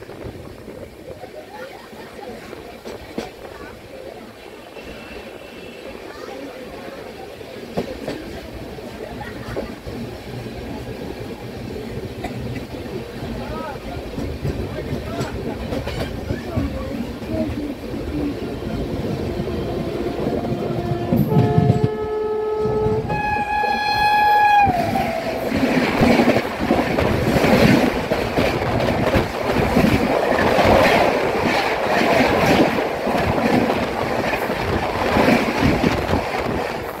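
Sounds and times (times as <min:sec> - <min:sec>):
train wheels clattering on rails: 0:02.2 - 0:03.8, 0:07.6 - 0:19.0, 0:24.4 - 0:37.0
locomotive horn: 0:20.2 - 0:25.5.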